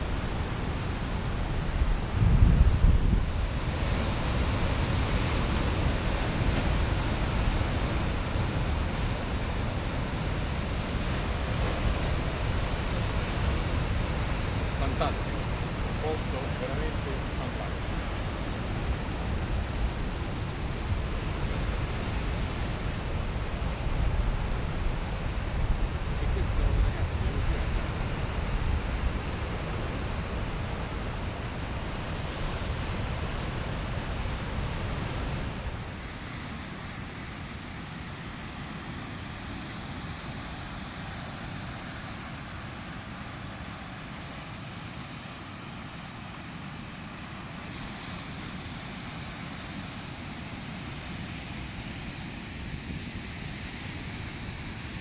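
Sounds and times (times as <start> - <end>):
wind buffeting microphone: 0.0 - 16.2
surf breaking on rocky shore: 0.0 - 55.0.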